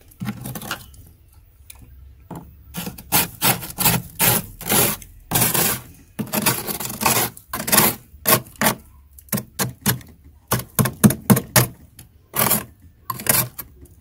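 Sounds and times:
metal utensil scraping ice: 0.2s - 1.0s, 2.7s - 8.8s, 11.3s - 13.8s.

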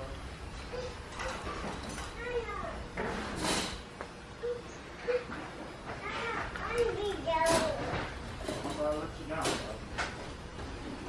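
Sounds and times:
high-pitched voices talking: 0.7s - 2.9s, 4.4s - 8.0s.

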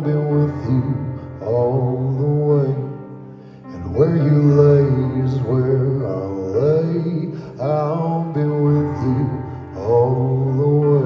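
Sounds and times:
man singing wordless melody: 0.0s - 11.0s.

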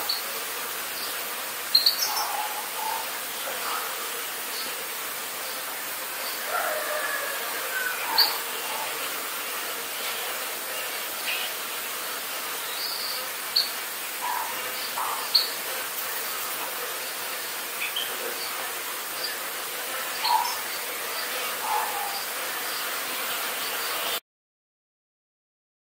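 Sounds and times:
bees buzzing: 0.0s - 24.2s
bird chirps: 20.2s - 20.7s.

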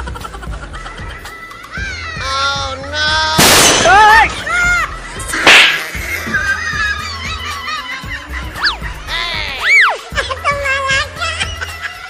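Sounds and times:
whip-like swish: 5.4s - 5.9s.

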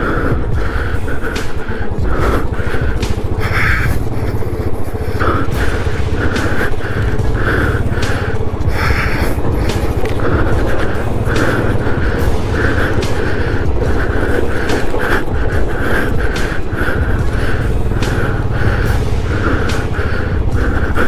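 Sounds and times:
background music with a beat: 0.0s - 21.0s
motorcycle engine running: 0.0s - 21.0s.

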